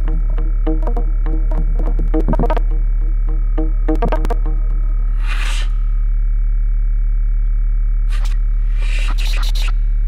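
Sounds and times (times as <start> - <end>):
loud low buzzy drone: 0.0 - 8.6.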